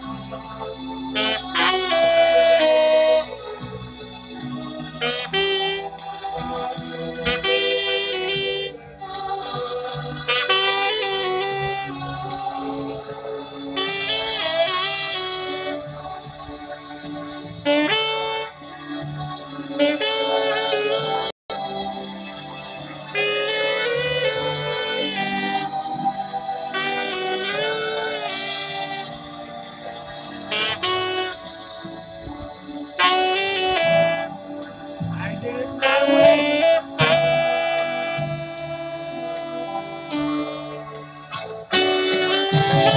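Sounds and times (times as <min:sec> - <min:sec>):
alto saxophone slow melody: 0:00.0 - 0:42.9.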